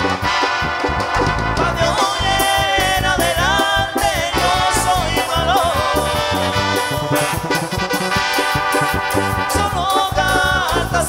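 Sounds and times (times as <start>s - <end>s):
drums: 0.0s - 11.0s
electric bass: 0.0s - 11.0s
guitar: 0.0s - 11.0s
live band playing: 0.0s - 11.0s.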